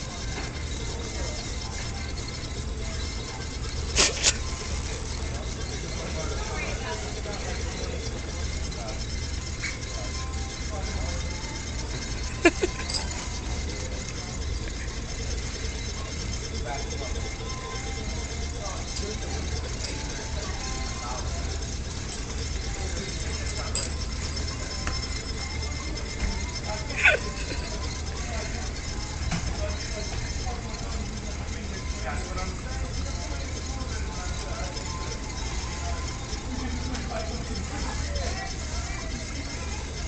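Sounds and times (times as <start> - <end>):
faint background voices: 0.0 - 40.0
steady low hum: 0.0 - 40.0.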